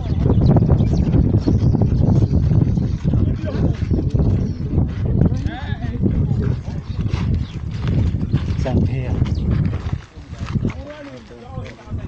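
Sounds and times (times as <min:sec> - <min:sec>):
steady low rumble: 0:00.0 - 0:10.8
people talking while walking: 0:00.0 - 0:12.0.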